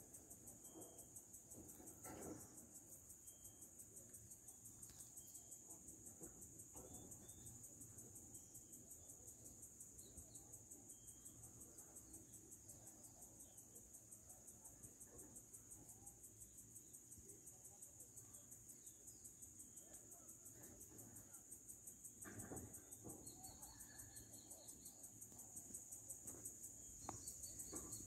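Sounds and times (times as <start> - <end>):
faint cricket trill: 0.0 - 28.0.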